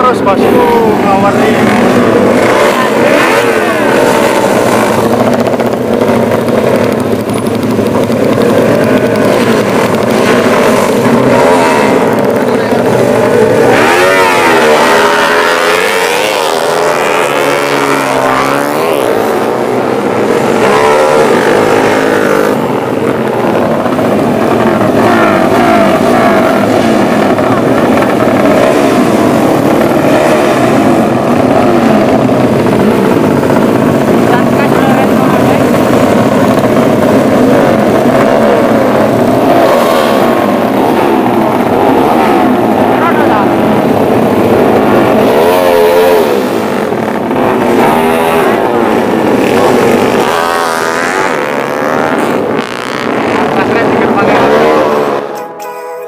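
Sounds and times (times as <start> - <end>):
motorcycle engines revving: 0.0 - 55.6.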